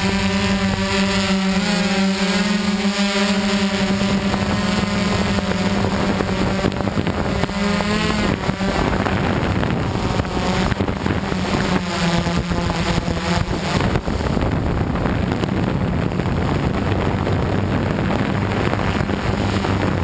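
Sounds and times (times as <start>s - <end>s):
drone motors humming: 0.0s - 20.0s
wind noise: 0.0s - 20.0s.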